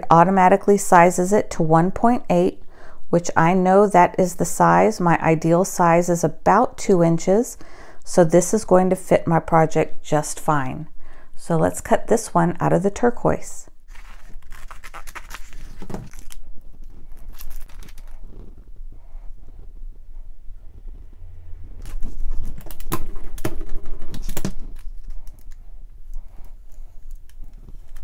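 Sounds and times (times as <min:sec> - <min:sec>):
plastic tape crackling and rustling: 0:13.9 - 0:18.8, 0:21.8 - 0:25.6, 0:27.0 - 0:28.0.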